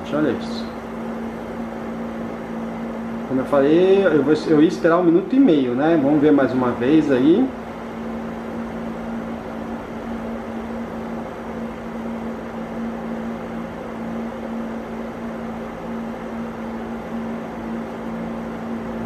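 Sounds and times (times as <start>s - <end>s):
dehumidifier humming: 0.0s - 19.0s
fan air rush: 0.0s - 19.0s.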